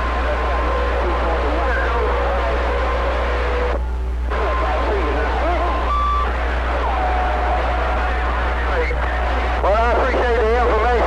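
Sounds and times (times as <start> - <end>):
low steady hum: 0.0 - 11.0
radio band hiss: 0.0 - 11.0.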